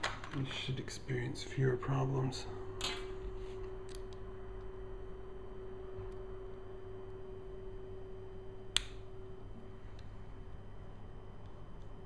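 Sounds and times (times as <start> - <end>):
faint steady tone and hum: 0.0 - 12.0.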